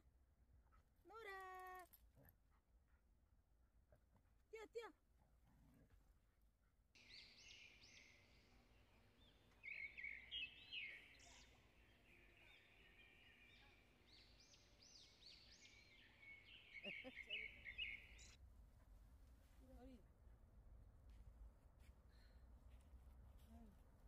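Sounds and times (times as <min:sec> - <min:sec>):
small birds chirping: 0:07.0 - 0:18.4.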